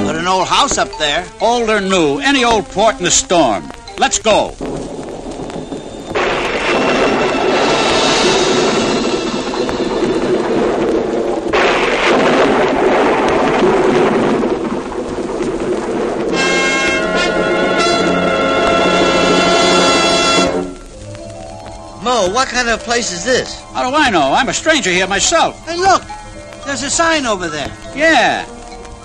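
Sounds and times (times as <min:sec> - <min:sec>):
music: 0:00.0 - 0:11.1, 0:16.4 - 0:29.0
thunder crashing: 0:00.0 - 0:29.0.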